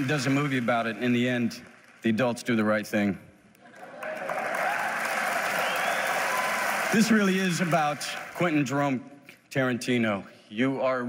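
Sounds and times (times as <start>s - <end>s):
audience applauding: 0.0s - 2.2s, 3.7s - 8.8s.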